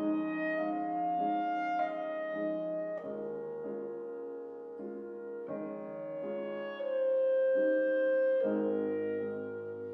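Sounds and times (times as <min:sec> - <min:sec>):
clarinet long notes: 0:00.0 - 0:09.9
piano chords: 0:00.0 - 0:09.9.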